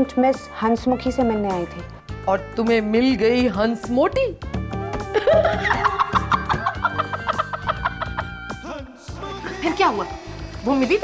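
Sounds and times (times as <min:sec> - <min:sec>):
background music: 0:00.0 - 0:11.0
rapid staccato clucking: 0:04.7 - 0:08.4.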